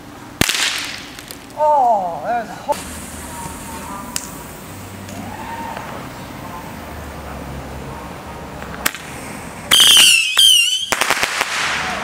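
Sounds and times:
firecracker crack: 0:00.0 - 0:02.1, 0:02.7 - 0:06.1, 0:08.5 - 0:12.0
steady background hiss: 0:00.0 - 0:12.0.

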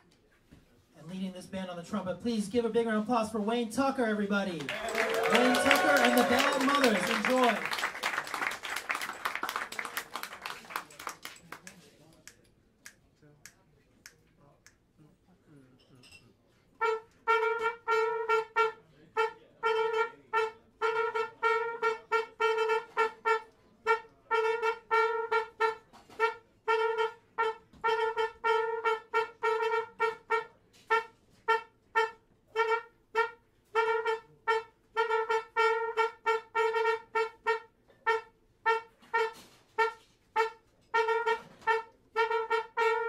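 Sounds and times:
jazz trumpet playing short notes: 0:04.7 - 0:11.6, 0:16.7 - 0:43.0.

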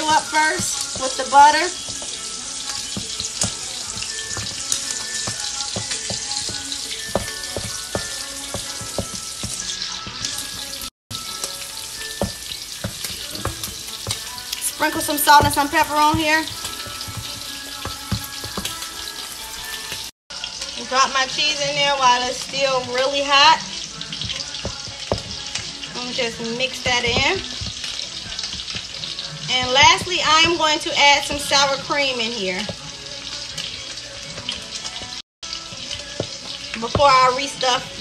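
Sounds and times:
food sizzling in a pan: 0:00.0 - 0:38.0.

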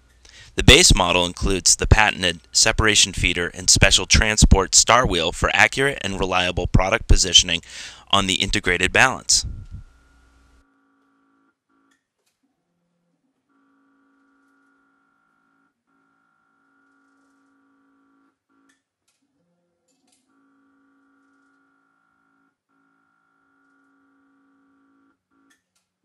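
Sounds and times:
faint steady hum: 0:00.0 - 0:10.6.

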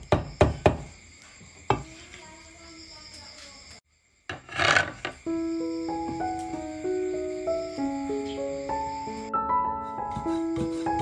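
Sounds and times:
knife scraping chopping board: 0:04.3 - 0:05.2
background music with held notes: 0:05.3 - 0:11.0.

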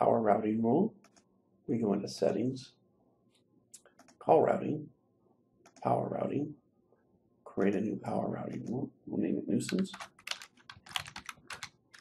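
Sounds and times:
computer keyboard typing: 0:01.0 - 0:01.2, 0:03.9 - 0:04.2, 0:08.4 - 0:08.8, 0:09.6 - 0:12.0.

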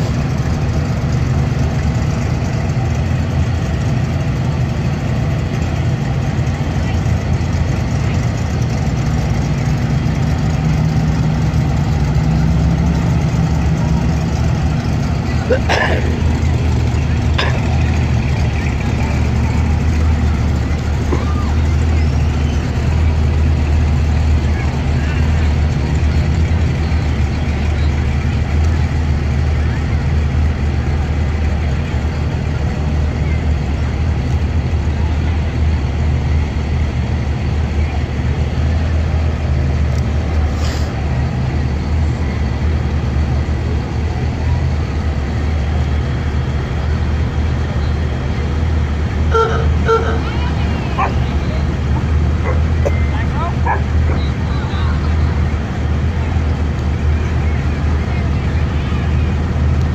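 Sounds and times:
vehicles driving slowly past: 0:00.0 - 0:59.9
horn beeps: 0:49.3 - 0:51.8.

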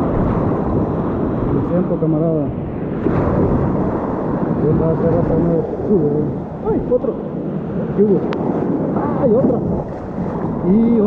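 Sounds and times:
ocean surf washing: 0:00.0 - 0:11.0.

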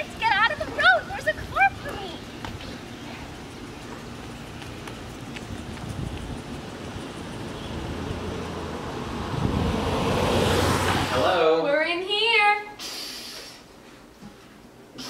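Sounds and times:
car engine and tyre noise: 0:02.4 - 0:11.5.

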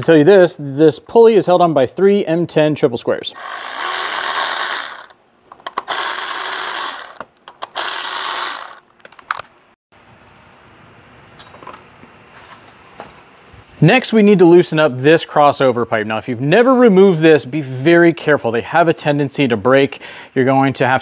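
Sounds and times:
cordless electric ratchet running: 0:03.4 - 0:05.2, 0:05.8 - 0:08.8.

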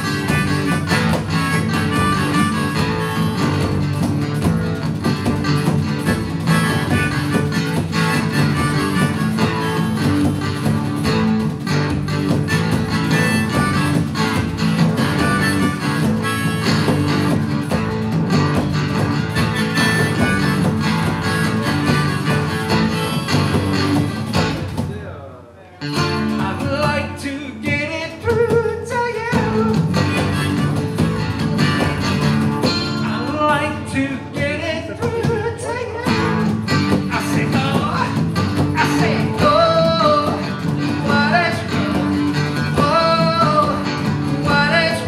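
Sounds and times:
harmonica melody: 0:00.0 - 0:24.6, 0:29.4 - 0:33.9, 0:34.9 - 0:45.0
acoustic guitar strumming: 0:00.0 - 0:45.0.

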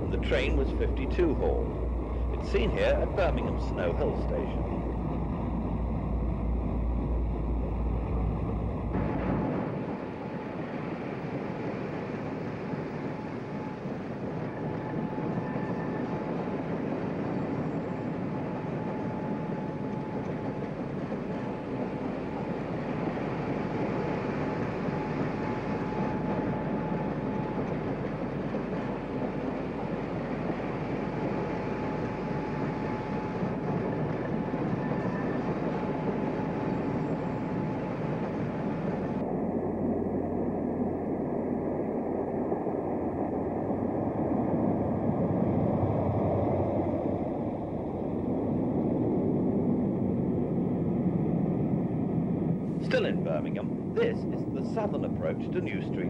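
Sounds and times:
faint high whine: 0:00.0 - 0:56.0
train rumbling past on rails: 0:00.0 - 0:56.0.

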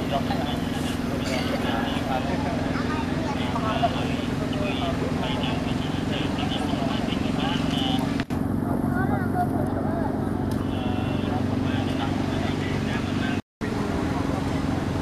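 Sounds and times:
indistinct background voices: 0:00.0 - 0:08.2
steady motor hum: 0:00.0 - 0:15.0.

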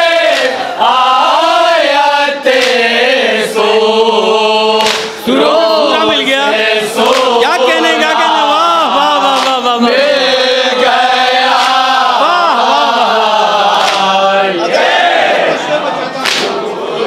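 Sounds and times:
men chanting a lament: 0:00.0 - 0:17.0
chest slaps: 0:04.8 - 0:05.2, 0:07.0 - 0:07.4, 0:09.3 - 0:09.6, 0:13.8 - 0:14.1, 0:16.2 - 0:16.6.

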